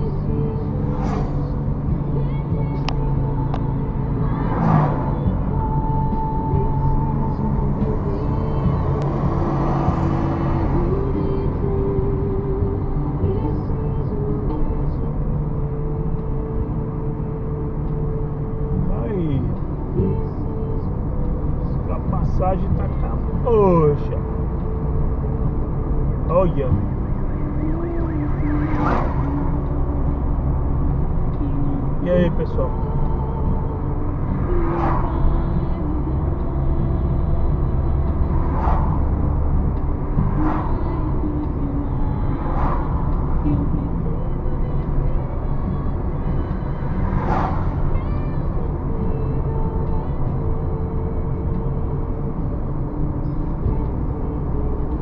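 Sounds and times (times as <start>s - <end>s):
car road and engine rumble: 0.0s - 55.0s.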